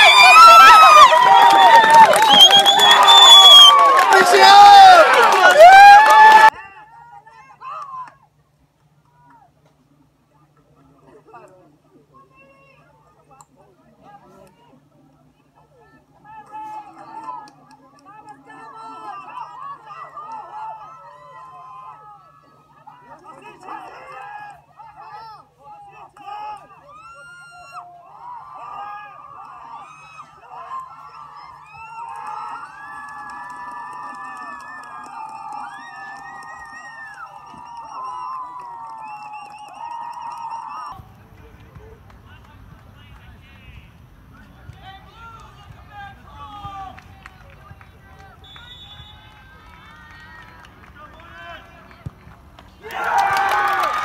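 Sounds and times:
crowd shouting and cheering: 0.0s - 8.1s, 16.2s - 41.2s, 44.6s - 54.0s.

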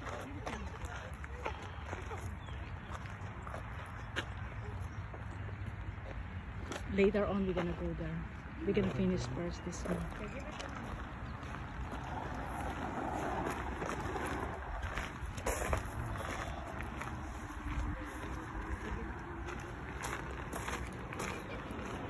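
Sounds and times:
footsteps on gravel: 0.0s - 22.0s
wind rumble on microphone: 10.1s - 21.0s.

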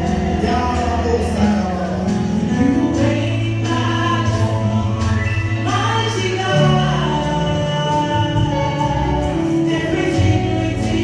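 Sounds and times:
group of singers: 0.0s - 11.0s
keyboard backing: 0.0s - 11.0s.

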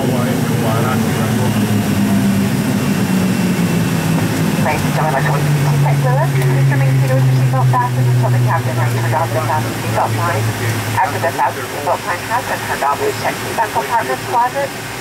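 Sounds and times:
jet engines spooling down: 0.0s - 15.0s.

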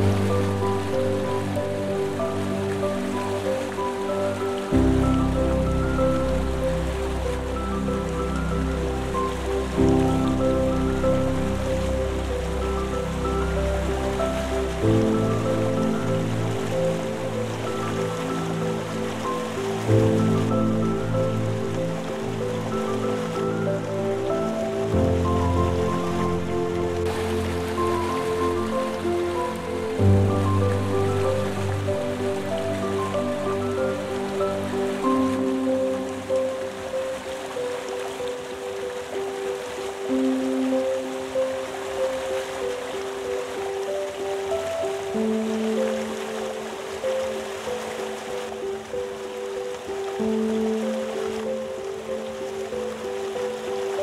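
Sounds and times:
slow piano chords: 0.0s - 54.0s
waterfall rushing: 0.0s - 54.0s.

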